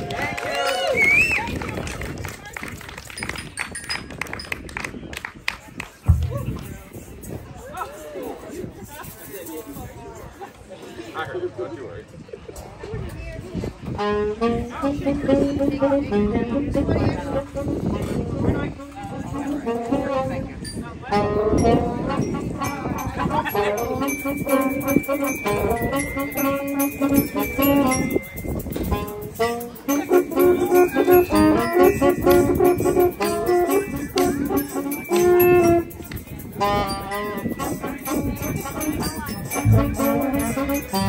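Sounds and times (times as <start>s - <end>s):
voices: 0.0s - 41.0s
drums playing: 6.1s - 7.0s, 39.4s - 41.0s
saxophones and horn playing: 13.9s - 41.0s.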